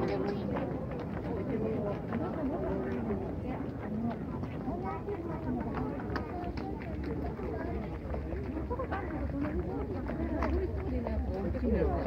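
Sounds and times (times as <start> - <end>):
footsteps on concrete: 0.0 - 12.0
many people chattering: 0.0 - 12.0.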